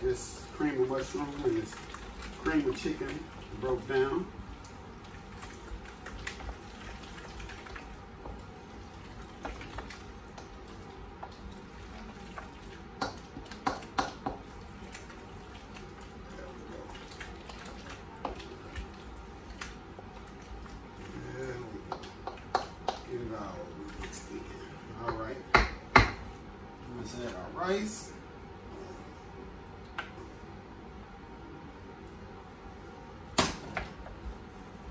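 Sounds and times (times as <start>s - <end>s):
spoon stirring thick wet mix: 0.0s - 25.5s.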